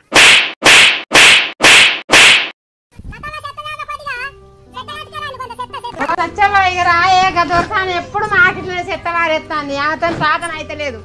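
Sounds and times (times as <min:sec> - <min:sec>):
slap sound effect: 0:00.0 - 0:02.6.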